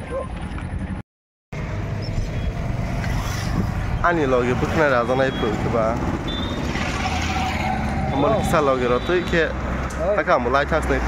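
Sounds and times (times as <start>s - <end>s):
passing traffic rumble: 1.6s - 11.0s.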